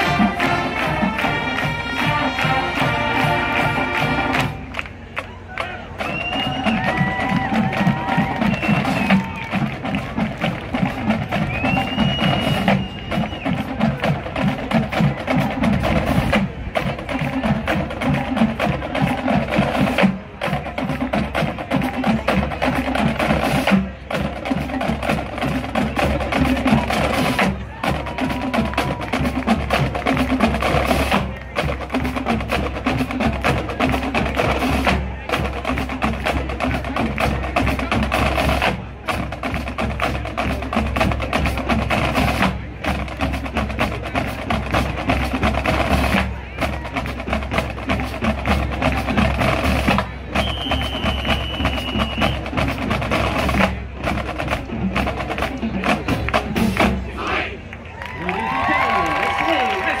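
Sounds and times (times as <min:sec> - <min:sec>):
marching drumline cadence: 0:00.0 - 1:00.0.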